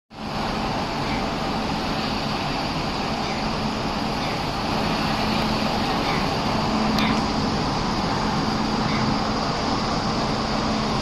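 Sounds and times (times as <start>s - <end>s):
electric locomotive humming: 0.1s - 11.0s.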